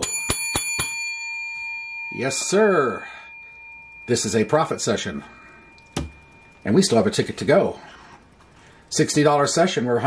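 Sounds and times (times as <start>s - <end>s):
bell-like metallic ring: 0.0s - 8.3s.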